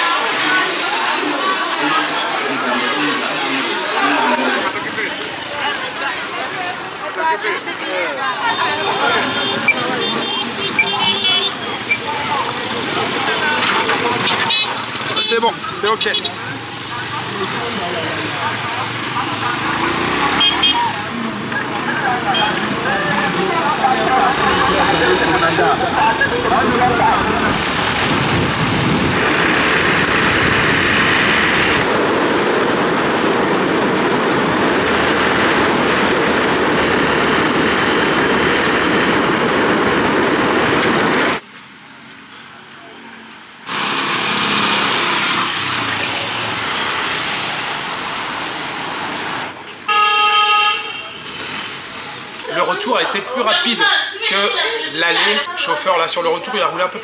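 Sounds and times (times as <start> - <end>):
vehicle horn: 8.4 - 11.8, 20.4 - 20.9, 49.9 - 51.4
motorcycle engine noise: 16.5 - 41.4
wind rushing: 26.8 - 41.4.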